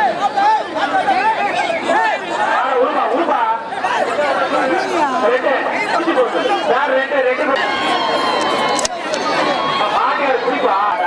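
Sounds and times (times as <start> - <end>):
men's voices chattering: 0.0 - 11.0.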